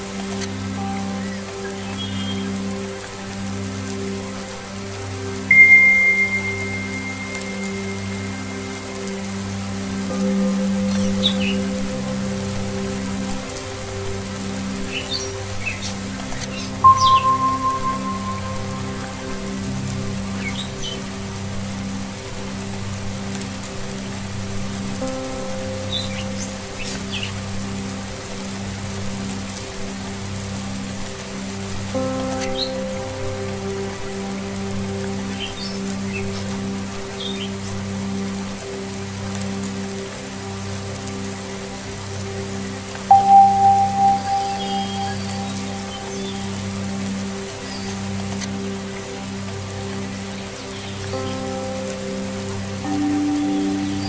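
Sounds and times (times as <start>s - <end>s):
singing bowl drone music: 0.0s - 54.0s
steady rain: 0.0s - 54.0s
singing bowl struck and ringing: 5.5s - 8.1s, 16.8s - 19.0s, 43.1s - 45.7s.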